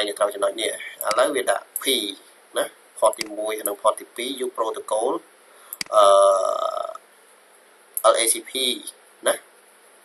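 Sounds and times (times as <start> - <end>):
man saying uhh: 5.9 - 7.0.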